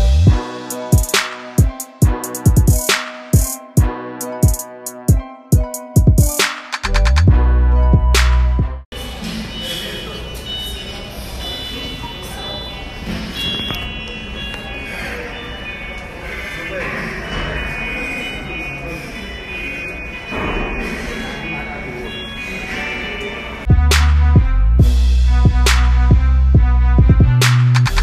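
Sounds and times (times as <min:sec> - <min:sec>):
music over speakers: 0:00.0 - 0:08.8, 0:23.7 - 0:28.0
indistinct voices: 0:09.0 - 0:23.8.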